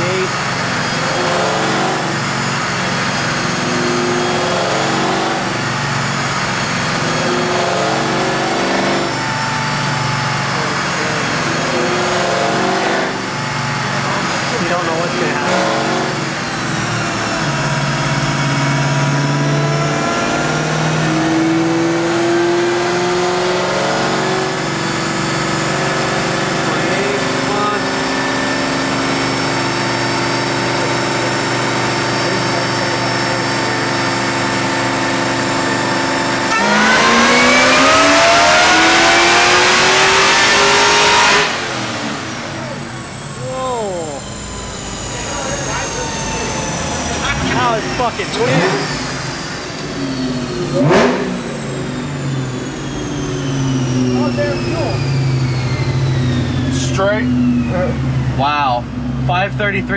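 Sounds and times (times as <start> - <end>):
car engine revving on a dyno: 0.0 - 59.9
dyno rollers winding down: 0.0 - 59.9.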